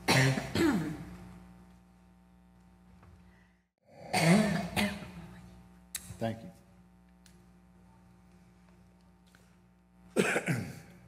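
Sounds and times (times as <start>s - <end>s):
man clearing his throat: 0.0s - 1.1s, 4.0s - 5.3s, 10.1s - 11.0s
steady low hum: 0.0s - 11.0s.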